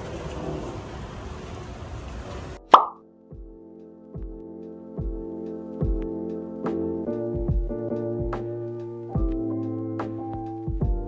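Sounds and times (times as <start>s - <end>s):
transition pop with falling pitch: 2.6s - 3.0s
background music: 2.6s - 11.0s.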